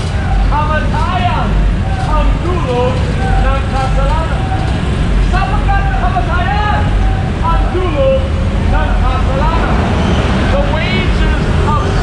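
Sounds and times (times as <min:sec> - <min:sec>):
low rumble of traffic: 0:00.0 - 0:12.0
man preaching loudly: 0:05.3 - 0:09.9.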